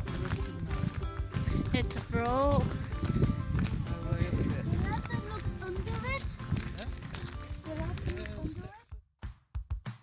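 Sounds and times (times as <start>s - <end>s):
people's voices: 0.0s - 8.8s
footsteps on gravel: 0.0s - 8.9s.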